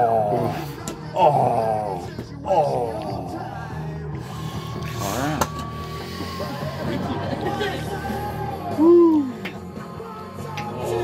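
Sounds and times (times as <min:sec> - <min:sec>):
background music: 0:00.0 - 0:11.0
man groaning in pain: 0:01.1 - 0:03.4.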